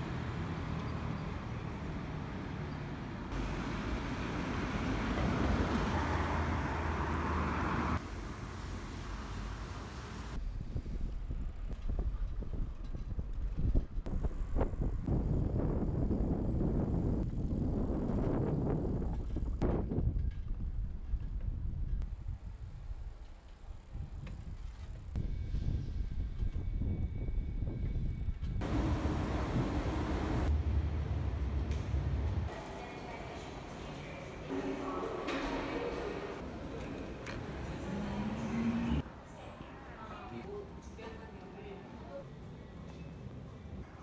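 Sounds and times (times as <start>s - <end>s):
road rumble: 0.0s - 15.5s, 28.6s - 43.9s
wind buffeting microphone: 10.4s - 23.2s.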